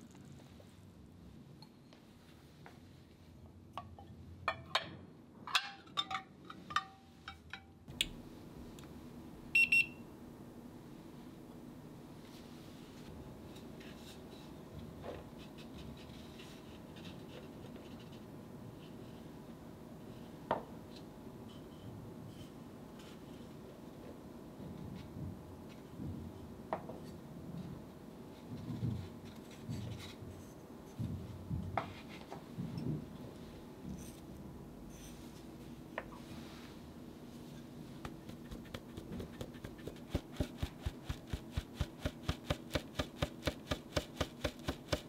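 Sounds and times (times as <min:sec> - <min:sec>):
thermometer beeps: 0:09.6 - 0:10.0.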